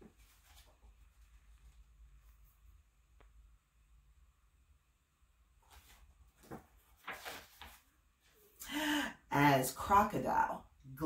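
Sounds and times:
book pages rustling: 0.0 - 2.6, 5.6 - 8.4.

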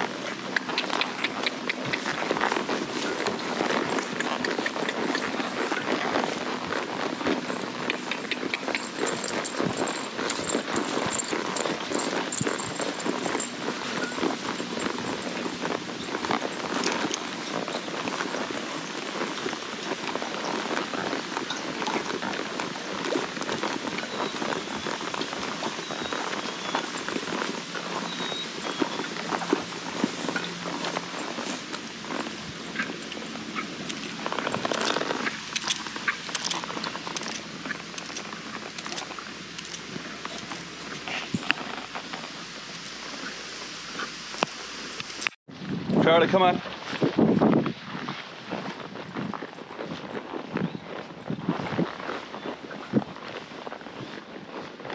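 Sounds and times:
hooves on turf: 0.0 - 45.4, 46.0 - 54.9
grass rustling: 0.0 - 45.8, 46.4 - 54.9.

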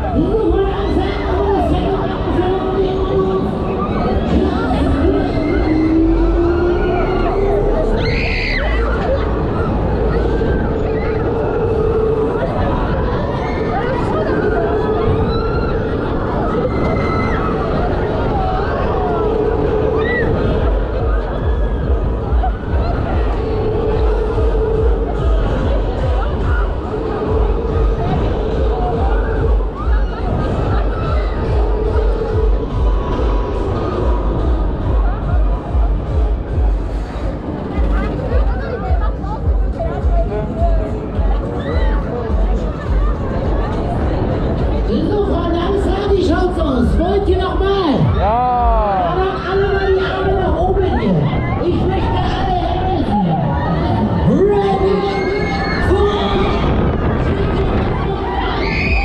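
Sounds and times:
crowd shouting: 0.0 - 36.6, 44.9 - 59.0
fairground ride whine rising: 0.0 - 59.0
wind rumble on microphone: 0.0 - 59.0.

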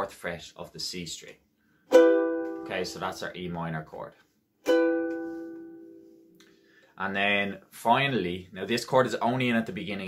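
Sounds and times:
ukulele chord strum: 1.9 - 3.3, 4.6 - 6.5.

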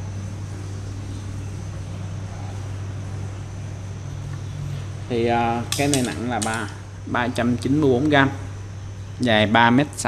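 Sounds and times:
faint high whine: 0.0 - 10.0
low machinery hum: 0.0 - 10.0.

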